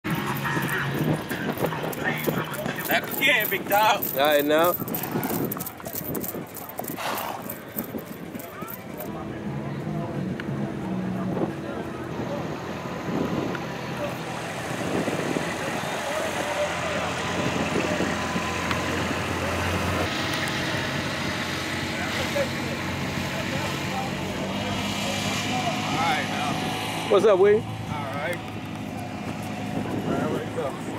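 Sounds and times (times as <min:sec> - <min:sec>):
horse hooves clopping: 0:00.0 - 0:09.1, 0:28.1 - 0:30.9
background voices: 0:00.0 - 0:13.1
diesel engine running: 0:00.0 - 0:30.9.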